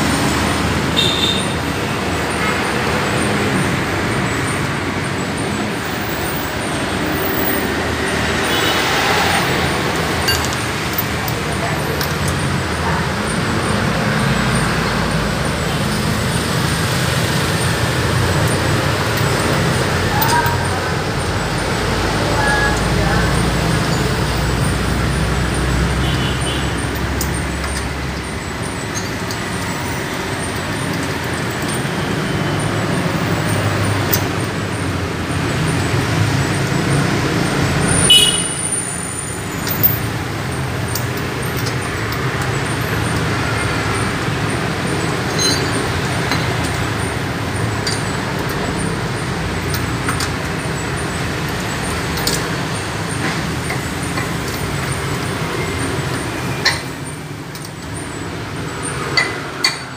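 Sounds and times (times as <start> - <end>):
road traffic rumble: 0.0 - 59.9
indistinct voices: 0.2 - 38.1.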